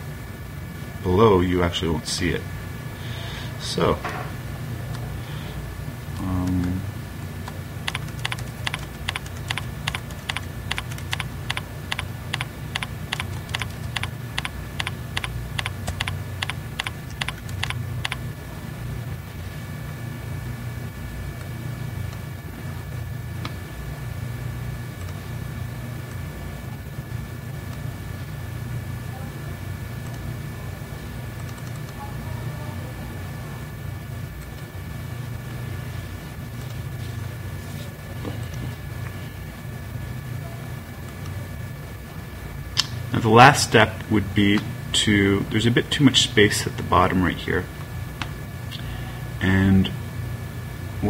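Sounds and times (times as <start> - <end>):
steady low hum: 0.0 - 51.0
keyboard keystroke clicks: 7.4 - 18.2.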